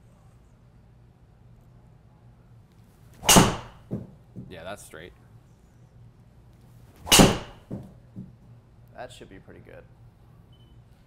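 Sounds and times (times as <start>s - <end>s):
ball hitting impact screen: 3.2s - 4.5s, 7.0s - 8.4s
golf club striking ball: 3.2s - 4.5s, 7.0s - 8.3s.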